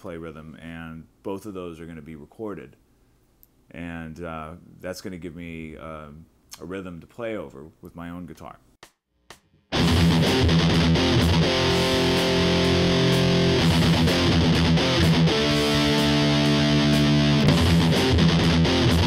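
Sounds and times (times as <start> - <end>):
drum machine beat: 8.8 - 19.0
distorted electric guitar chords: 9.7 - 19.0.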